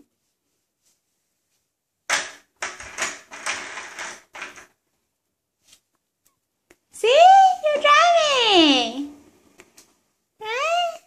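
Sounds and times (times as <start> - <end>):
plastic toy wheels rattling on wood: 2.2 - 4.7.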